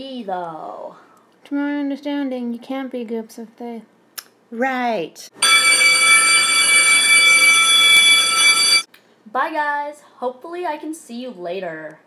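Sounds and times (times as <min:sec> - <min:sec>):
electric bell ringing: 0:05.4 - 0:08.9.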